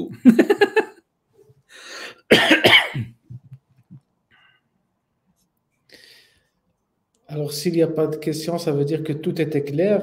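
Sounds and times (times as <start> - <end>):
soft breath in: 1.7 - 2.2, 5.9 - 6.6
man coughing: 2.2 - 3.4.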